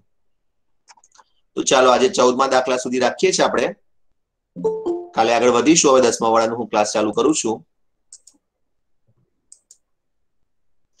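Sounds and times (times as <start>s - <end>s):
computer mouse clicks: 0.8s - 1.4s, 8.1s - 8.4s, 9.5s - 9.9s.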